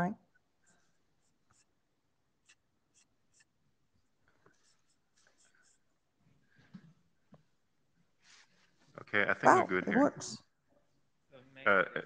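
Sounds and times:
person speaking: 8.9 - 10.4.

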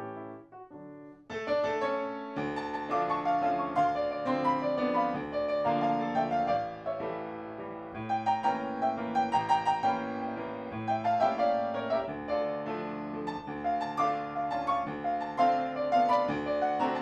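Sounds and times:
solo piano music: 0.0 - 17.0.

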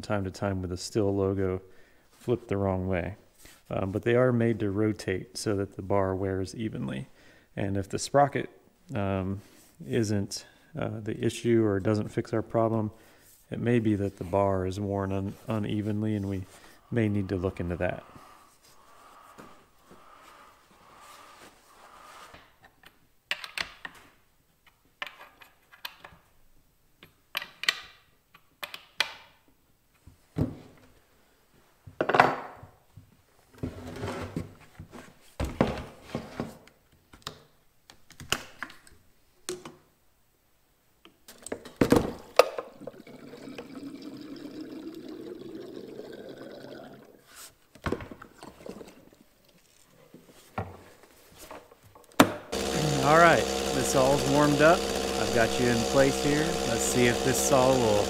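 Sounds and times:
whirring rising in pitch: 52.6 - 58.0.

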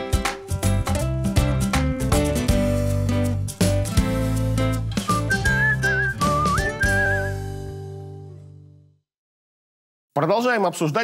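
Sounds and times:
bouncy title jingle music: 3.7 - 8.0
whistled melody: 5.0 - 7.7.

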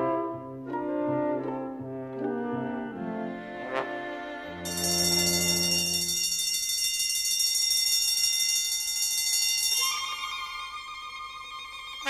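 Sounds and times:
electric bell ringing: 4.7 - 10.8.

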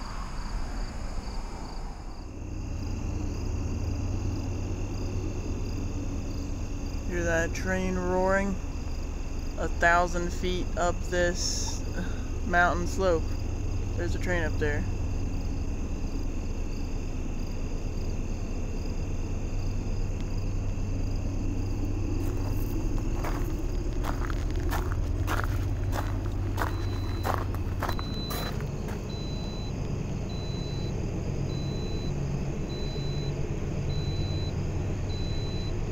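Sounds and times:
train rumbling: 0.0 - 14.7, 20.9 - 32.8.

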